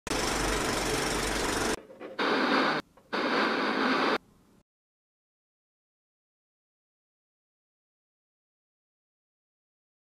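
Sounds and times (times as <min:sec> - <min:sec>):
film projector rattling: 0:00.1 - 0:01.8
tv static hiss: 0:02.2 - 0:04.2.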